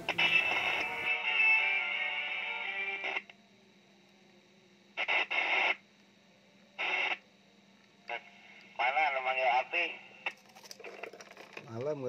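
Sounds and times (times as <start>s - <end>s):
radio squelch hiss bursts: 0.0s - 3.3s, 5.0s - 5.9s, 6.8s - 7.2s, 8.0s - 10.3s
voice over radio: 8.1s - 10.1s.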